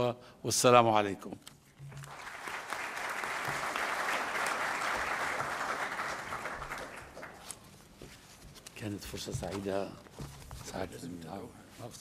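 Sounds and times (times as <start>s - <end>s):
audience applause: 2.0s - 7.5s.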